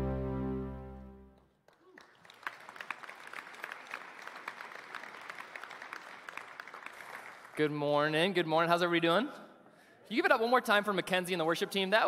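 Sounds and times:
congregation applauding: 1.4 - 8.3.

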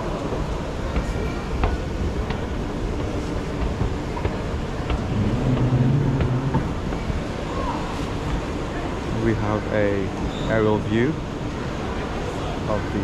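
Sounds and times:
hubbub of busy hall: 0.0 - 13.0
escalator rumbling: 1.8 - 9.5
low hum: 2.3 - 9.5.

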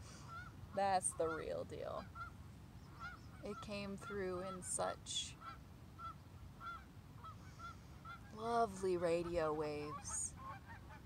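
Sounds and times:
geese honking: 5.4 - 11.0.

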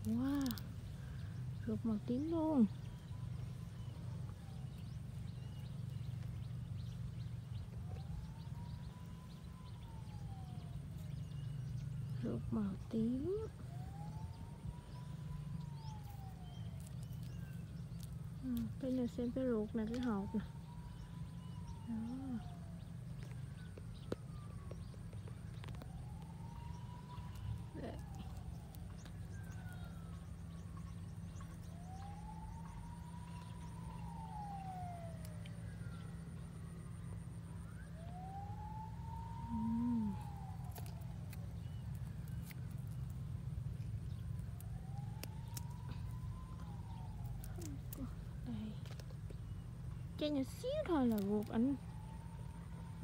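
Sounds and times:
distant siren-like wail: 0.0 - 53.0
steady low hum: 0.0 - 53.0.

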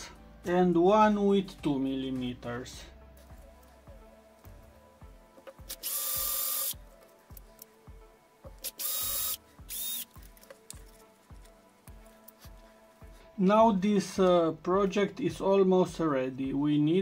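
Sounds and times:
background music with steady beat: 0.0 - 17.0
cordless drill boring plastic: 5.7 - 6.8, 8.6 - 10.1.

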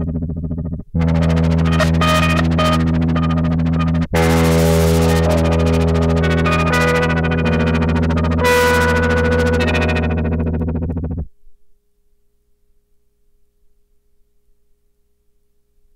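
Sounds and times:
droning lap steel synth chords: 0.0 - 11.3.

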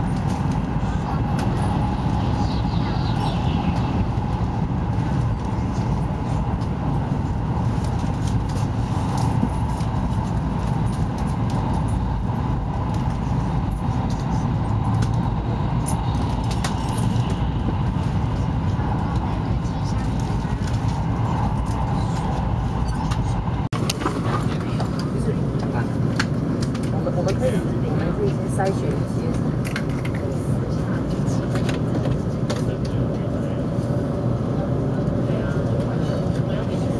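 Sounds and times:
train running at speed: 0.0 - 36.9.

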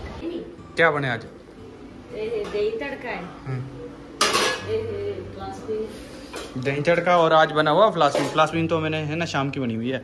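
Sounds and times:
steel cookware clanging: 4.2 - 4.8.

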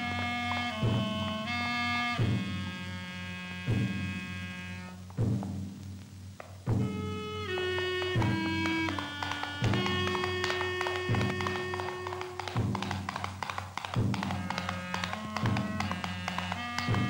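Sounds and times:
heavy drum strikes: 5.2 - 5.8, 6.6 - 17.0
orchestral chords: 6.8 - 17.0.

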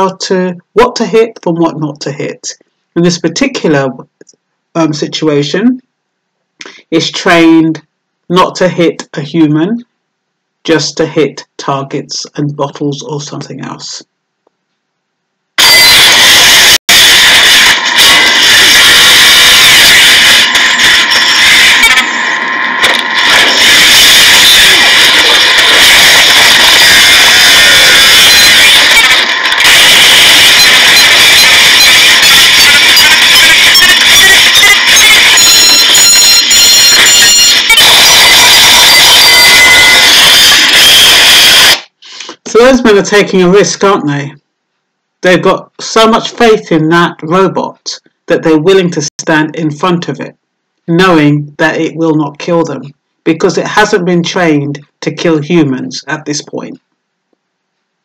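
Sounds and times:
harsh distorted noise: 15.6 - 44.3.

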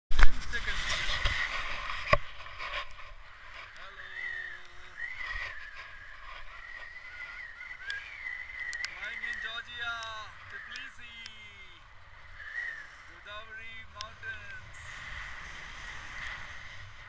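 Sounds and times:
wind over camera microphone: 0.1 - 17.0
thin wavering whistle: 3.9 - 11.2, 12.2 - 13.7.

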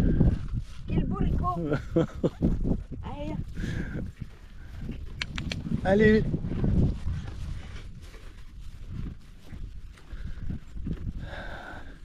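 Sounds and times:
footsteps on grass: 0.0 - 1.7, 3.1 - 12.0.

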